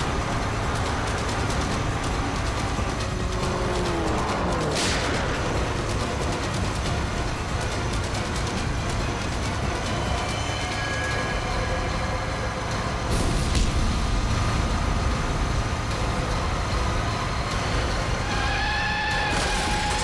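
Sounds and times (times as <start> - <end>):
vehicle engines rumbling: 0.0 - 20.0.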